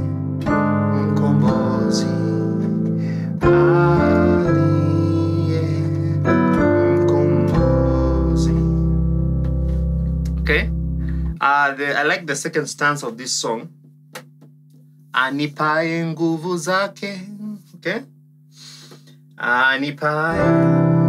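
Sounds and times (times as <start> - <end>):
keyboard playing hymn chords: 0.0 - 11.4, 20.2 - 21.0
man talking: 10.3 - 10.8, 11.4 - 13.8, 17.8 - 18.1.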